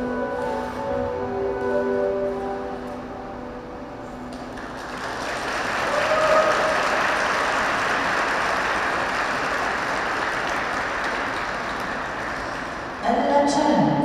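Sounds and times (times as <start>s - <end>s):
audience applauding: 4.3s - 13.0s.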